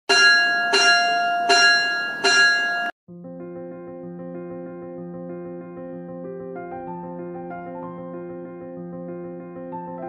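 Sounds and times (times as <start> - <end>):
bell ringing: 0.1 - 3.0.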